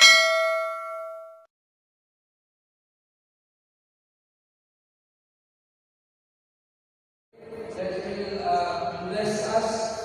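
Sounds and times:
bright bell ding: 0.0s - 1.5s.

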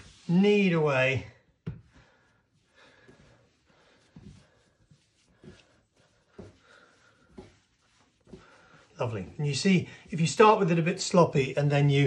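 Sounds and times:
bread dough kneaded by hand: 0.0s - 10.9s.

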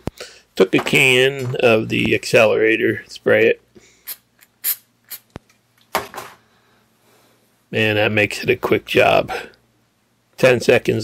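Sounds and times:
aerosol can spritzes: 4.1s - 5.3s.

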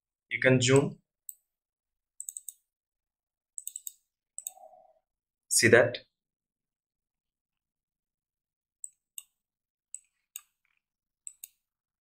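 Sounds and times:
computer mouse clicking: 2.2s - 2.6s, 3.6s - 4.8s, 8.8s - 11.6s.

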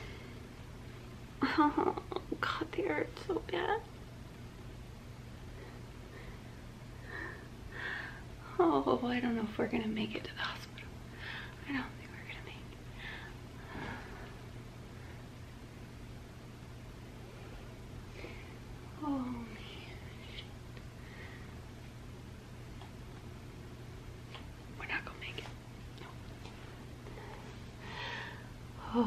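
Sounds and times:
low steady hum: 0.0s - 29.0s
woman whispering: 11.6s - 12.8s, 19.0s - 20.6s, 24.8s - 26.2s.

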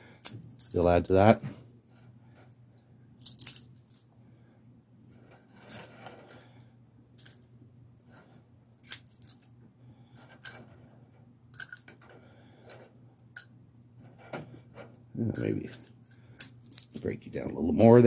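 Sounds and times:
low steady hum: 0.0s - 18.0s
dried peppers crackling: 15.2s - 18.0s.

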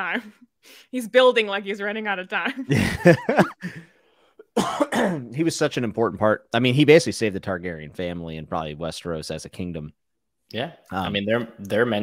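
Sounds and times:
person laughing: 2.5s - 3.9s
person clearing throat with cough: 4.5s - 5.3s.

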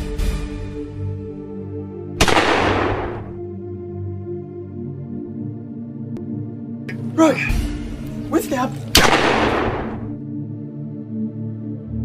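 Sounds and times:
gunshot: 2.2s - 3.4s, 8.9s - 10.2s
person shouting: 6.9s - 7.7s, 8.3s - 8.8s.

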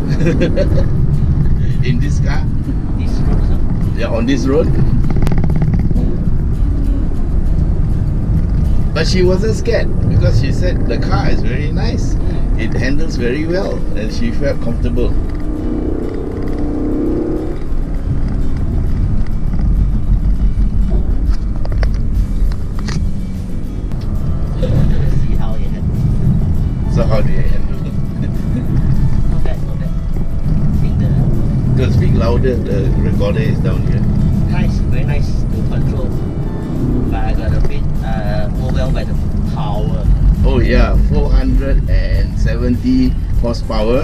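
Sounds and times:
music: 0.0s - 16.3s, 17.5s - 44.0s
car engine and tyre noise: 0.0s - 44.0s
voices: 8.9s - 16.3s, 26.6s - 44.0s.

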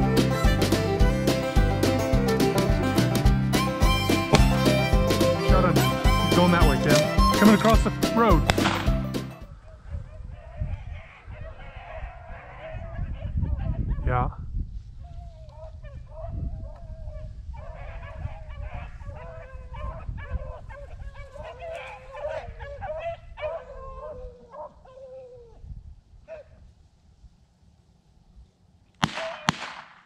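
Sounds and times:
hounds baying: 0.0s - 14.0s, 15.5s - 25.4s
sharp knocks: 8.5s - 9.0s.

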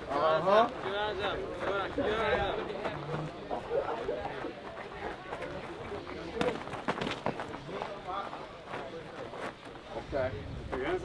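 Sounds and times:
onlookers chatting: 0.0s - 11.0s.

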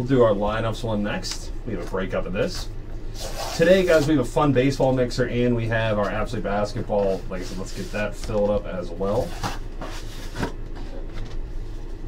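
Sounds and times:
cardboard rubbing on a desk: 3.1s - 4.3s, 6.9s - 8.4s, 9.1s - 11.2s.

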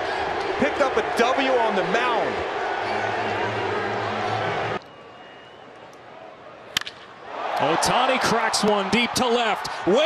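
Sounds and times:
stadium crowd murmur: 0.0s - 6.8s
ballpark crowd noise: 0.0s - 10.0s
bat hitting ball crack: 6.7s - 7.6s.

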